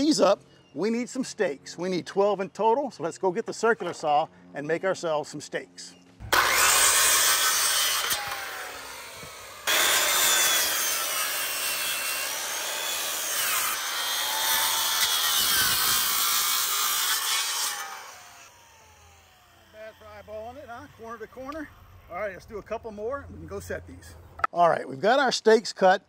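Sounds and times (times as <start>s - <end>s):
circular saw cutting wood: 6.2s - 22.6s.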